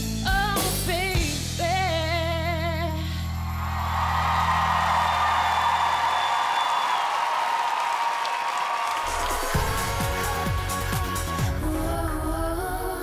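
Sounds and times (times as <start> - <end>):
audience cheering and applauding: 3.4 - 11.4.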